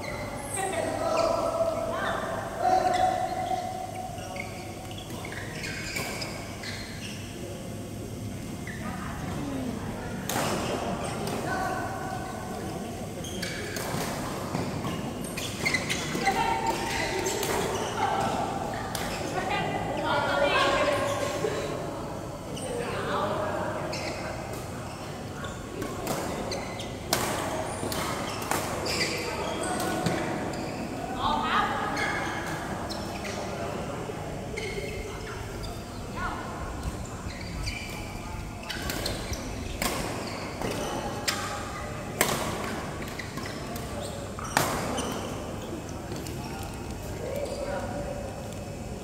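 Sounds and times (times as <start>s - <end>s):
players' voices: 7.6s - 13.7s.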